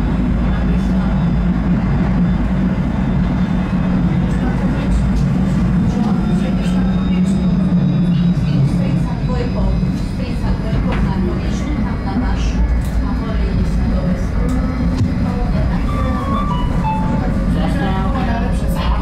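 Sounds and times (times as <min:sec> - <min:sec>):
tram wheels rumbling on rails: 0:00.0 - 0:19.0.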